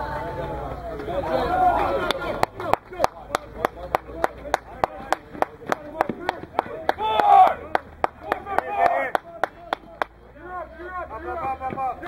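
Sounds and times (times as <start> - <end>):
hands clapping rhythmically: 1.8 - 10.2
people shouting: 6.0 - 9.2.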